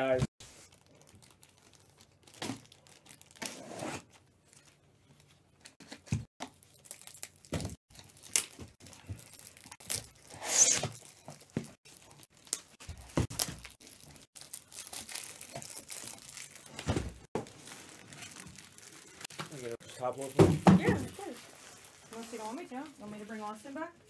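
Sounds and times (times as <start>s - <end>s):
cardboard tearing and crinkling: 6.8s - 22.9s.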